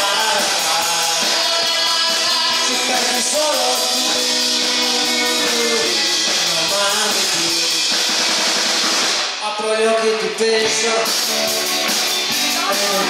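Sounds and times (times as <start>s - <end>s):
rock band playing: 0.0s - 9.4s, 10.0s - 13.0s
drums and cymbals: 0.0s - 9.5s, 10.2s - 13.0s.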